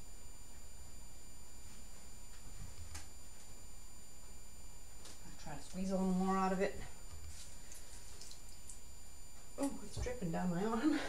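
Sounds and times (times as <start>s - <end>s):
low steady hum: 0.0s - 11.0s
soft wet ticks of squeezed lemon: 7.7s - 8.8s.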